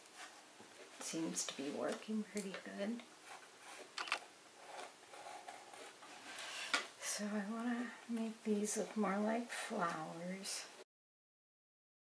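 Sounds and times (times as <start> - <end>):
marker scratching on canvas: 4.6 - 6.8.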